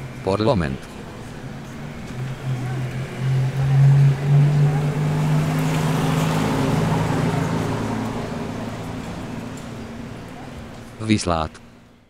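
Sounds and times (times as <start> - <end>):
tyre and road noise: 0.0 - 12.0
vehicle engine accelerating: 0.0 - 12.0.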